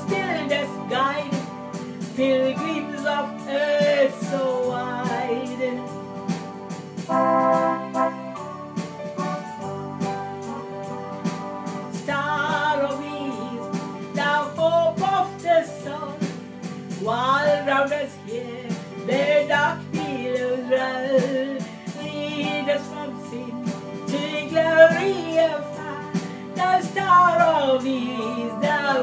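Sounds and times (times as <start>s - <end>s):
woman singing a hymn: 0.0s - 6.0s, 11.9s - 16.3s, 17.0s - 29.0s
electronic keyboard chords: 0.0s - 29.0s.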